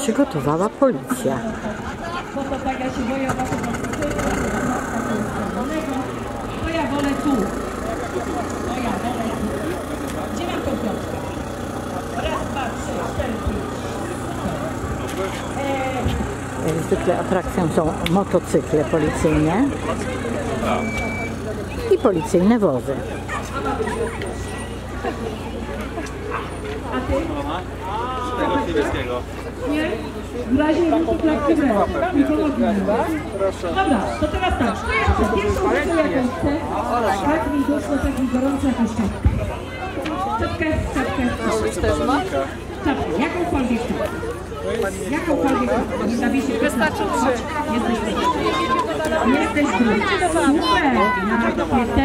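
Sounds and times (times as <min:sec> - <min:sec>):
people talking: 0:00.0 - 0:52.0
engine idling: 0:00.7 - 0:52.0
children's voices: 0:21.4 - 0:27.2, 0:32.2 - 0:52.0.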